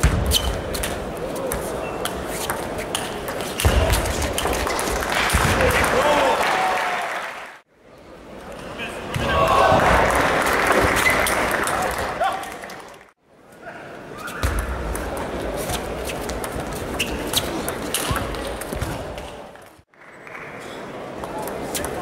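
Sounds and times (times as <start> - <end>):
crowd voices in large hall: 0.0 - 22.0.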